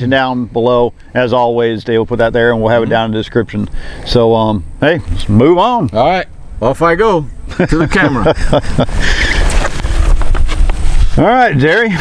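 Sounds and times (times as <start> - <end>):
wind buffeting microphone: 6.3 - 11.2.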